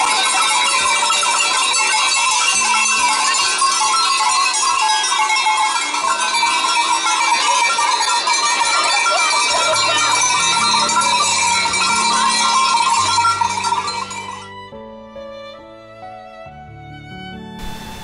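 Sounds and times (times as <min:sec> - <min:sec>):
goat bells clanging: 0:00.0 - 0:14.5.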